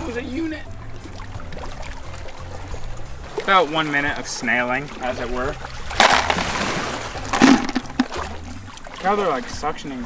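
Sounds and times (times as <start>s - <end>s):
shells clattering in plastic bucket: 6.0s - 8.2s.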